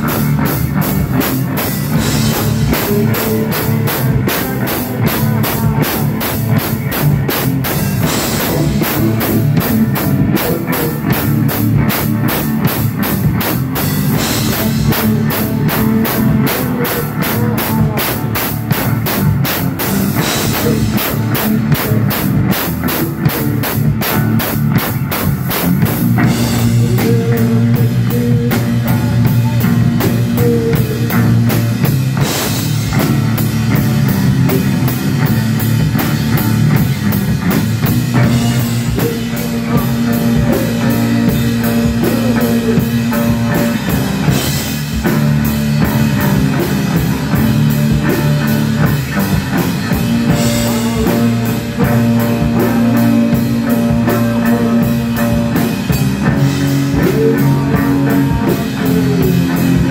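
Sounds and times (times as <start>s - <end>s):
drum kit playing fast: 0.0s - 59.9s
electric bass: 0.0s - 59.9s.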